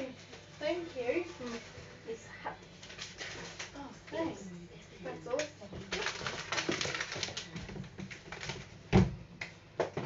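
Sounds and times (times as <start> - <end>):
crinkly rustling and handling: 0.0 - 8.9.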